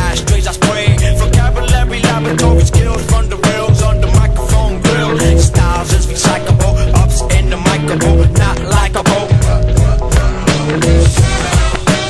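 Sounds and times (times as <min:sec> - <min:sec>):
hip-hop beat: 0:00.0 - 0:12.0.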